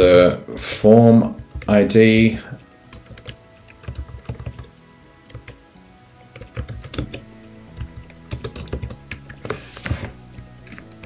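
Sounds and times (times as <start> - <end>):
soft background music: 0.0 - 11.0
keyboard typing clicks: 2.9 - 4.7, 6.3 - 9.6.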